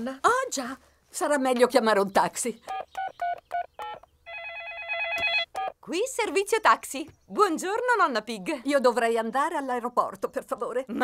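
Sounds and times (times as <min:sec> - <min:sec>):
cartoon telephone ringing: 0:03.8 - 0:05.6.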